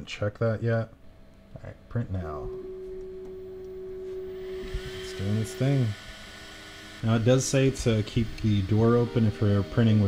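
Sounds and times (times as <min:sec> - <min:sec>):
steady hum-like tone: 0:00.0 - 0:10.0
faint gliding higher tone: 0:01.1 - 0:10.0.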